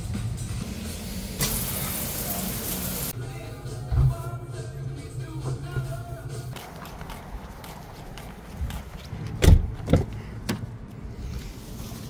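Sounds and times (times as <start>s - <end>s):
background music: 0.0s - 7.5s
outdoor background noise: 5.3s - 12.0s.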